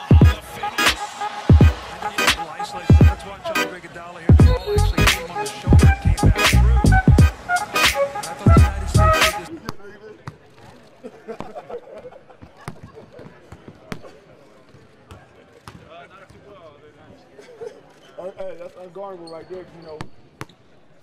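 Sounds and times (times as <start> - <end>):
people talking: 0.0 - 7.1, 7.8 - 11.4.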